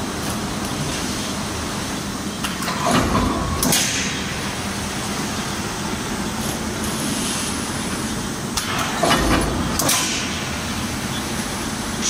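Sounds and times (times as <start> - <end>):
low hum of rollers: 0.0 - 12.0.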